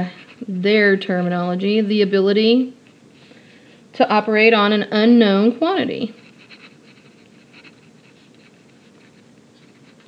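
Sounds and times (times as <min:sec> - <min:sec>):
pen scratching on paper: 0:06.1 - 0:10.0.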